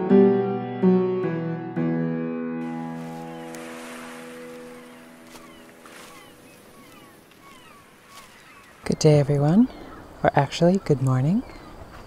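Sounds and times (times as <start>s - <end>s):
sustained piano chord: 0.0s - 6.0s
soft outdoor hiss: 2.6s - 12.0s
faint bird chirps: 3.2s - 12.0s.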